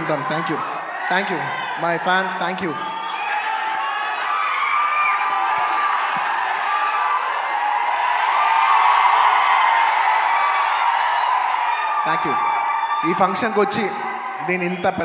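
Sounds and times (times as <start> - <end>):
audience cheering and whooping: 2.8 - 15.0.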